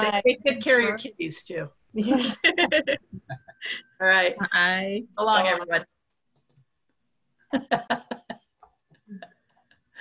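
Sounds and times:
people laughing over video call: 2.0s - 4.0s, 7.4s - 10.0s.

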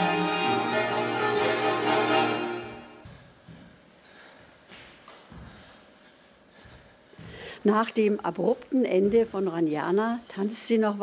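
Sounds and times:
strings and guitar ensemble: 0.0s - 3.0s.

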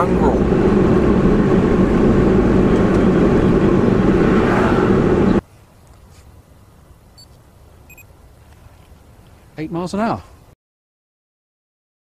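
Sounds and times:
car engine and road noise: 0.0s - 9.5s.

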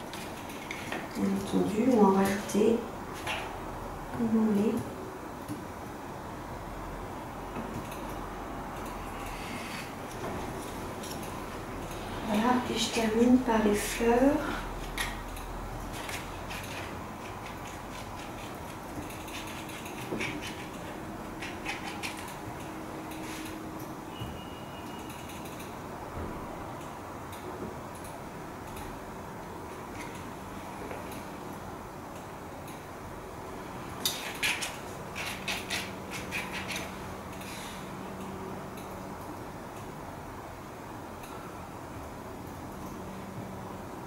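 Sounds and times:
room noise: 0.0s - 44.0s
painting knife scraping and tapping: 16.0s - 22.4s, 34.0s - 36.9s.

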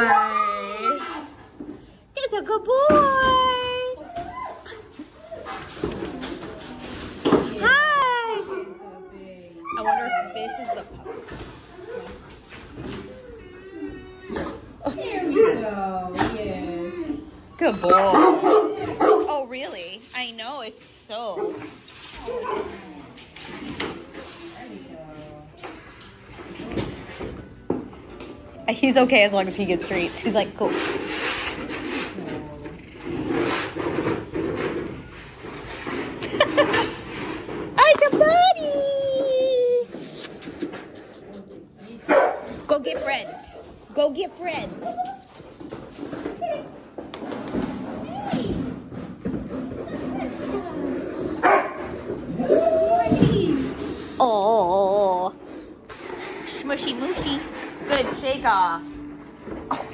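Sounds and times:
dog whining: 0.0s - 1.4s, 3.1s - 7.0s, 7.6s - 19.6s, 22.0s - 24.6s, 44.6s - 47.0s, 49.6s - 51.6s, 52.3s - 55.4s
dog yip: 17.0s - 19.3s.

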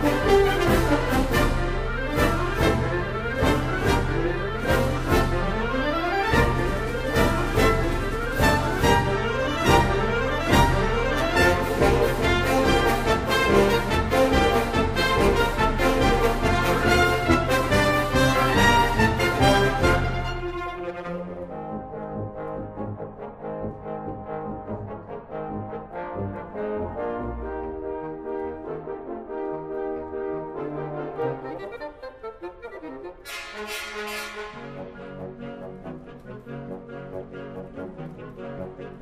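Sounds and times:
wind orchestra sustained chords: 0.0s - 39.0s.

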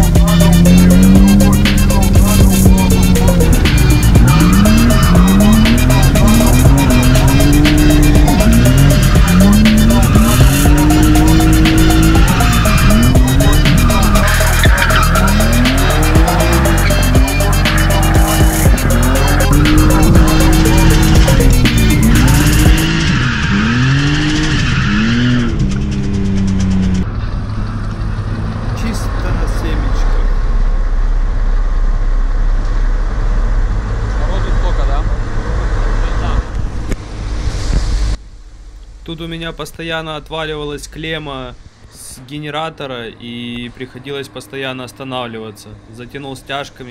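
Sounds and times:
fast beat background music: 0.0s - 23.1s
tyres squealing: 0.0s - 26.8s
car engine revving: 0.0s - 39.0s.

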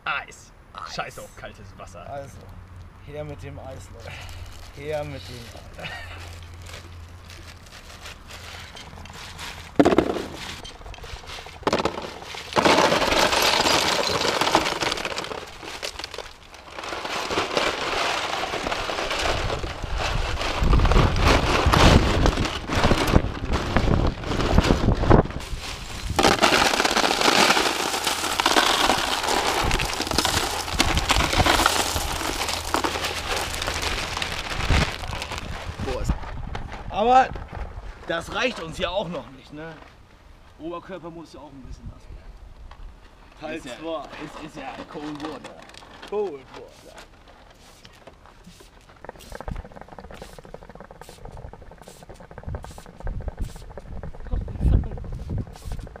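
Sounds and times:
ice cubes crackling and clattering: 4.2s - 36.2s, 43.5s - 55.0s.

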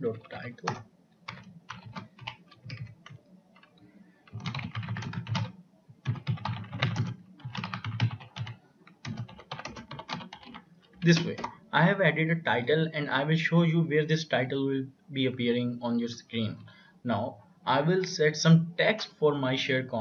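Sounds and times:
typing on computer keyboard: 0.0s - 11.6s.

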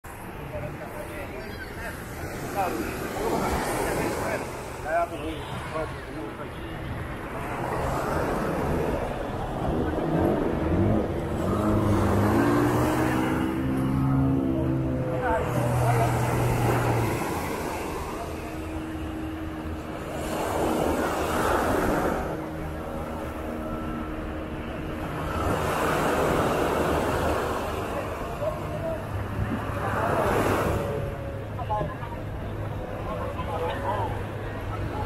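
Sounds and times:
motorboat engine: 0.1s - 35.0s
waves washing onto beach: 0.1s - 35.0s
higher engine tone: 0.4s - 35.0s.

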